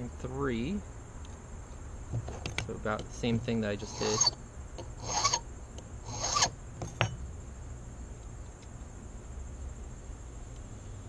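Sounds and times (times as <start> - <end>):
file rasping on brass key: 3.8 - 5.4, 6.1 - 6.5.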